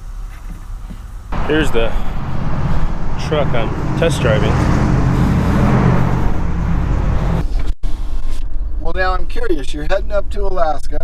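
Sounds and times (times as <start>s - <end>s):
truck cab hum while driving: 0.0s - 7.6s
vehicle hum with hiss: 0.0s - 8.5s.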